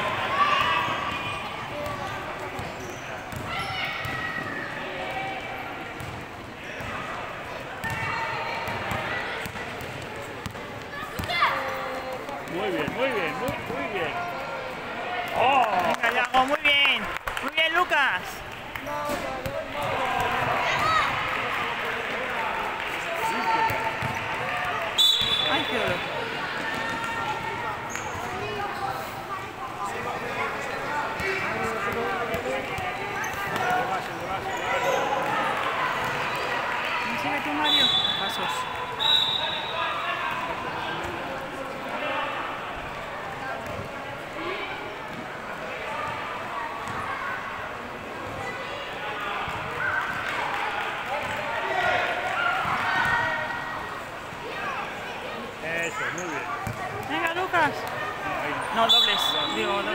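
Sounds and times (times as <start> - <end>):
hubbub of voices: 0.0 - 59.9
basketball bouncing on court: 1.8 - 4.4, 6.0 - 6.9, 7.8 - 11.4, 23.6 - 24.3, 46.8 - 47.0, 56.6 - 58.0
sharp whistle blasts: 25.0 - 25.7, 37.7 - 38.4, 39.0 - 39.8.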